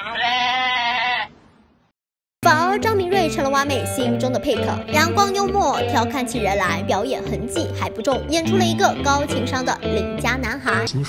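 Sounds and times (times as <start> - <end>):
wavering bleat: 0.0 - 1.3.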